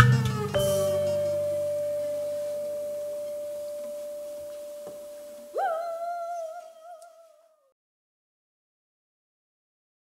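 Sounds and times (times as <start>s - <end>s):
high wavering note: 0.0s - 7.4s
pure ringing tone: 0.6s - 5.9s.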